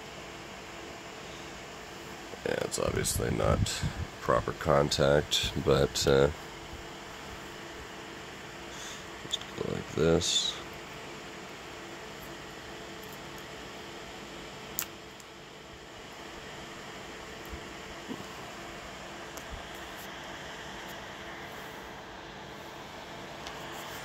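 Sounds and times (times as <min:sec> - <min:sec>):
faint circuit hum: 0:00.0 - 0:24.0
small cooling fan running: 0:00.0 - 0:24.0
sharp click: 0:14.8 - 0:15.3.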